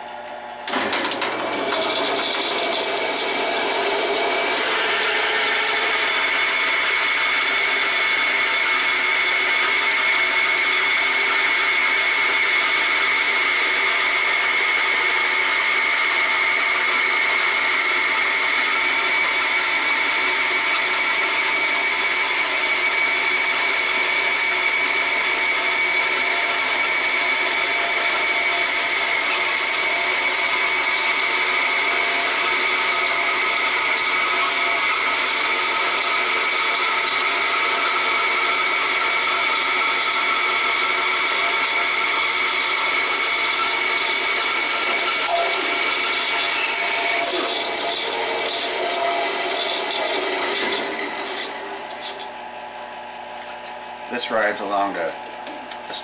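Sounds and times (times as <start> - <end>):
vacuum pump running: 0.0 - 56.0
bandsaw cutting wood: 0.7 - 52.3.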